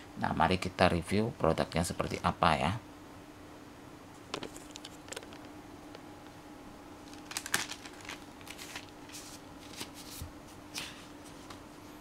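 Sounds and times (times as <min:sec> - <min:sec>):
paper rustling and sliding: 0:07.1 - 0:11.0.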